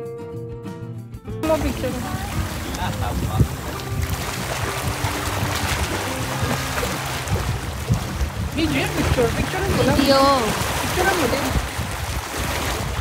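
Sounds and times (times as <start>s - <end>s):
sea washing against rocks: 1.4s - 13.0s
wind: 1.4s - 13.0s.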